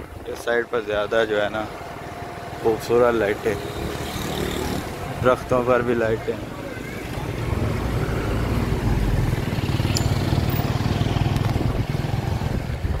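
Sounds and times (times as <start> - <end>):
motor vehicle engine running: 1.6 - 13.0.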